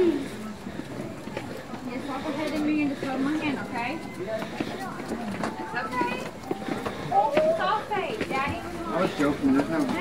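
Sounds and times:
indistinct talk of people walking: 0.0s - 10.0s.

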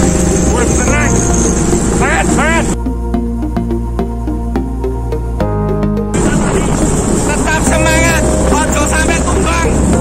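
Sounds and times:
faint background music: 0.0s - 10.0s
road and vehicle noise: 0.0s - 10.0s
wind on microphone: 6.1s - 10.0s.

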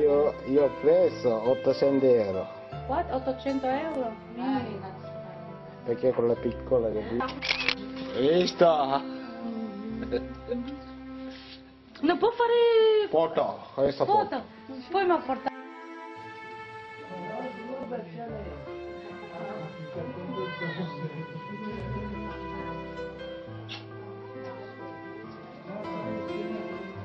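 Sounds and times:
background music: 0.0s - 27.0s
baby crying: 19.2s - 22.4s.

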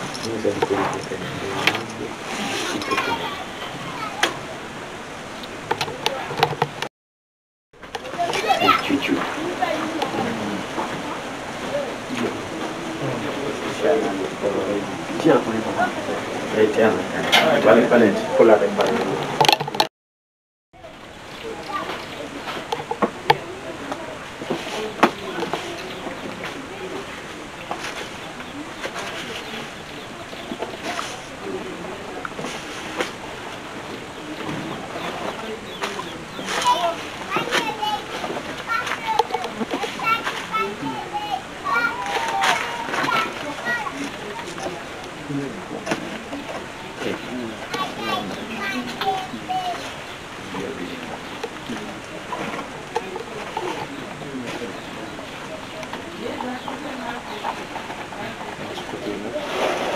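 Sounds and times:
indistinct talking: 0.0s - 6.9s, 7.8s - 19.9s, 20.8s - 59.9s
steady background hiss: 8.0s - 19.4s, 20.8s - 59.9s.

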